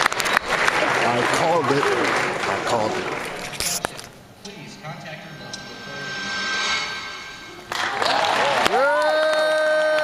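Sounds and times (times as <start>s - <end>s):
film soundtrack music over speakers: 4.4s - 8.0s
loud rush of noise: 4.8s - 8.8s.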